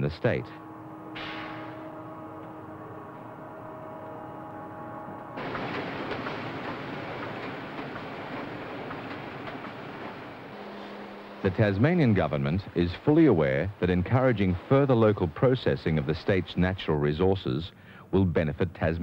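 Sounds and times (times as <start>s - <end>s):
machinery hum of held tones: 0.0s - 5.5s, 10.2s - 18.0s
industrial machine running: 0.0s - 17.1s.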